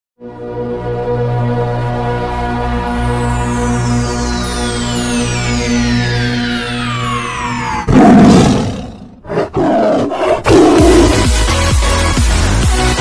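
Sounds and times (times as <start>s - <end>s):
falling synth sweep: 3.0s - 9.2s
big cat roar: 7.9s - 11.3s
electronic dance music: 10.8s - 13.0s.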